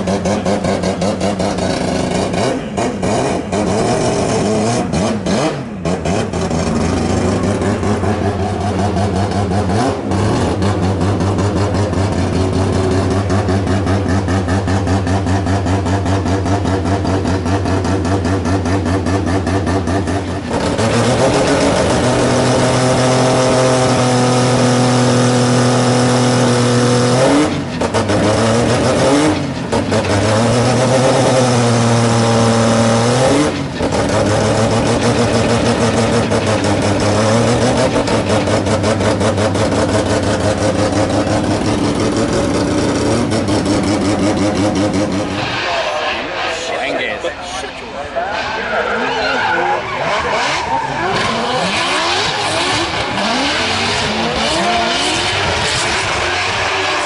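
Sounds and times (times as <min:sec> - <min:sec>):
engine revving: 0:00.0 - 0:47.6, 0:49.7 - 0:57.0.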